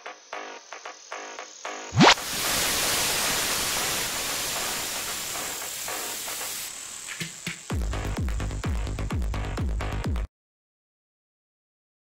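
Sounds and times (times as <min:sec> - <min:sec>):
tv static hiss: 0:00.0 - 0:07.8
thin high whine: 0:01.9 - 0:07.7.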